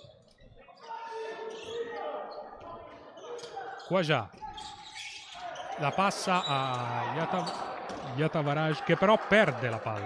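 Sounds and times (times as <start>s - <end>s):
voices of players and spectators: 0.0s - 10.0s.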